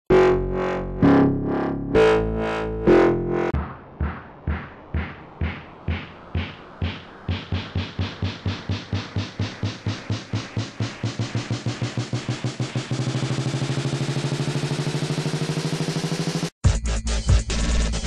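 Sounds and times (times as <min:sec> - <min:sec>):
steady low synth tone: 0:00.1 - 0:14.6
synthesized drum roll: 0:02.1 - 0:16.5.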